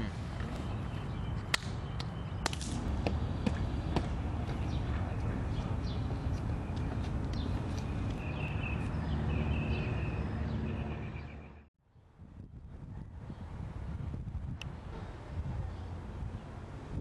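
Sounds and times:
wind on microphone: 0:11.9 - 0:17.0.

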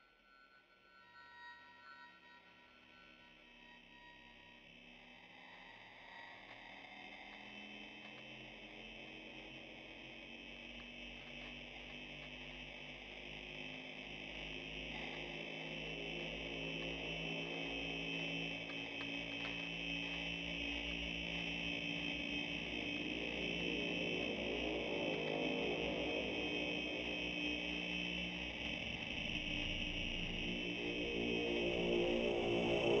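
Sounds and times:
dark ambient drone music: 0:01.3 - 0:33.0.

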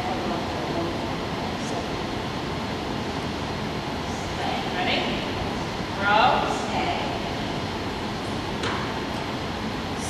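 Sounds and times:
rumbling ventilation noise: 0:00.0 - 0:10.0.

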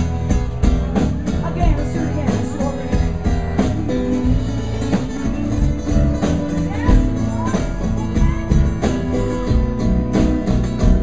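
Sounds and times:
acoustic guitar picking notes: 0:00.0 - 0:11.0
steady drum beat: 0:00.0 - 0:11.0.

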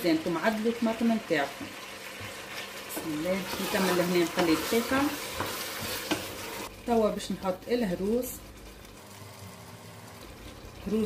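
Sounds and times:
vegetables sizzling in oil: 0:00.0 - 0:11.0.

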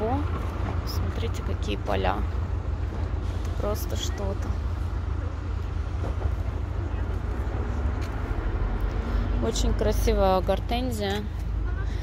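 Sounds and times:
outdoor background rumble: 0:00.0 - 0:12.0.

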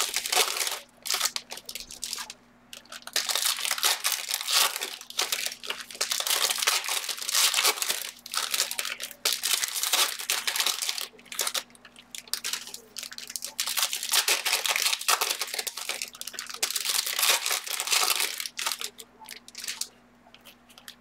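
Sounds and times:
foil wrappers crinkling and tearing: 0:00.0 - 0:21.0.

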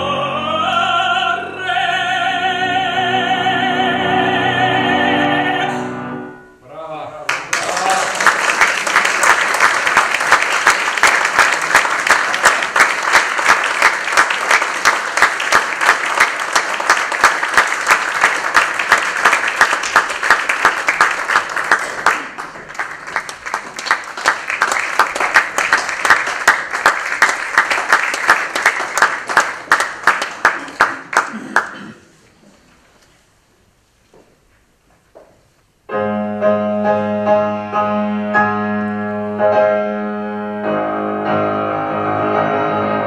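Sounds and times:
audience applauding: 0:07.3 - 0:31.8.

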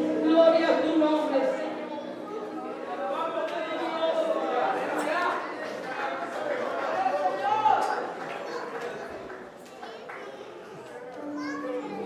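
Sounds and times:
many voices praying aloud: 0:00.0 - 0:12.0.

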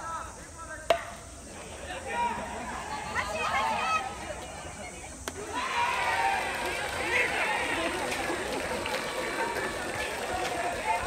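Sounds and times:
metal bat striking ball: 0:00.9 - 0:01.2.

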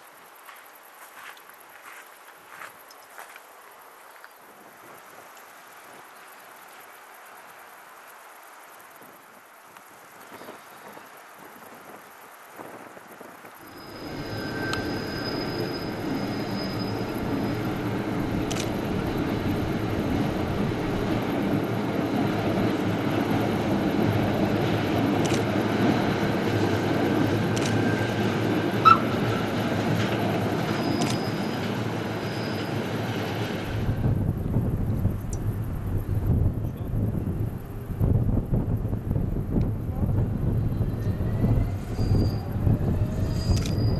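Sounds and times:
faint background noise: 0:00.0 - 0:28.2
train wheels rumbling on rail: 0:09.8 - 0:43.9
high wheel squeals: 0:13.6 - 0:21.2, 0:26.6 - 0:33.6, 0:40.7 - 0:43.9.

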